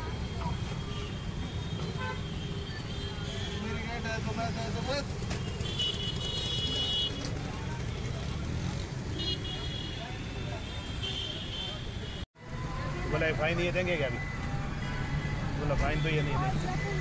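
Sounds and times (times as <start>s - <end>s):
traffic rumble: 0.0s - 17.0s
high vehicle horn: 5.4s - 7.2s.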